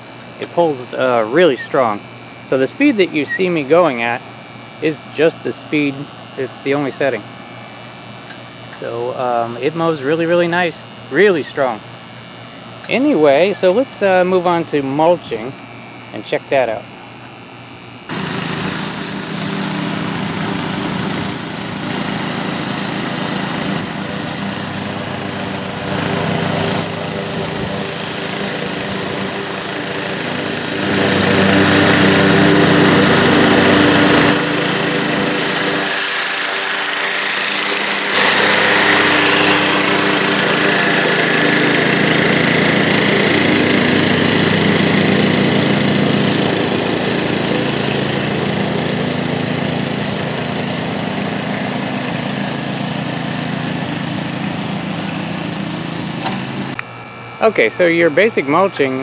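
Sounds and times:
lawn mower running: 0:00.0 - 0:59.0.

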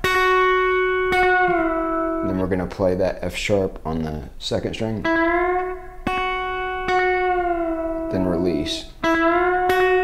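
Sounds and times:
electric guitar note with echo: 0:00.0 - 0:02.4, 0:05.0 - 0:10.0.

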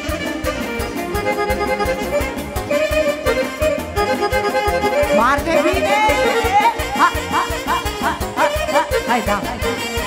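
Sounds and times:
alto saxophones: 0:00.0 - 0:10.0
live band playing dance tune: 0:00.0 - 0:10.0.

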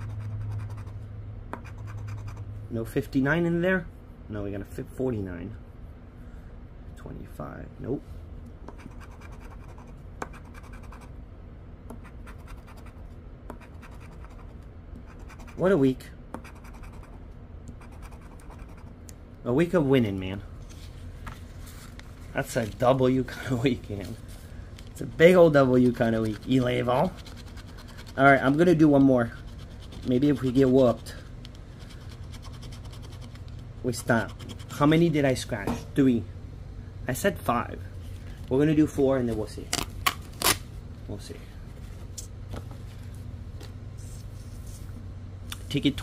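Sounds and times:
scratching a lottery ticket: 0:00.0 - 0:01.0, 0:08.8 - 0:11.0, 0:13.6 - 0:15.8, 0:17.8 - 0:18.9, 0:25.0 - 0:34.9.

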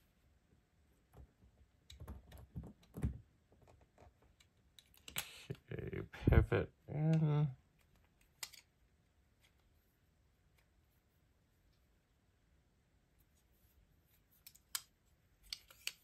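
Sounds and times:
hummed grunt of effort: 0:05.5 - 0:07.6.

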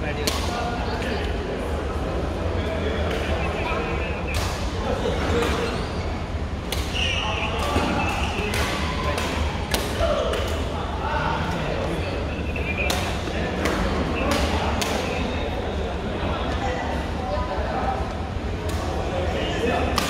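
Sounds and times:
players chatting: 0:00.0 - 0:20.0.

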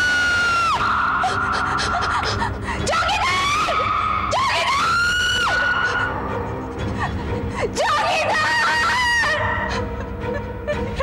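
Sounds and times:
woman screaming: 0:00.0 - 0:06.2, 0:07.8 - 0:09.8
dramatic background music: 0:00.0 - 0:11.0.

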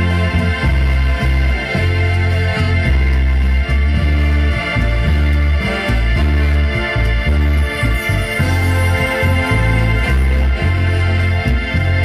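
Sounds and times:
brass and wind band playing: 0:00.0 - 0:12.0
strong bass notes: 0:00.0 - 0:12.0.

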